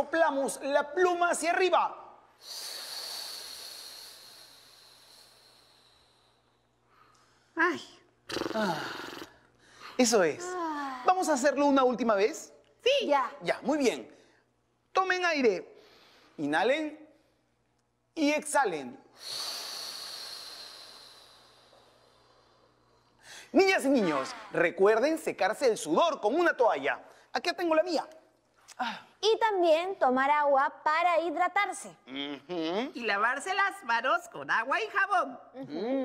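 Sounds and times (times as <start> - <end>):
breath blown out through mouth: 8.3 - 9.3.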